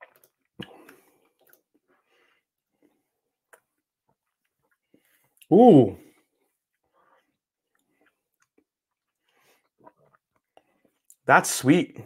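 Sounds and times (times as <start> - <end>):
tongue and lip clicks: 3.5 - 5.5.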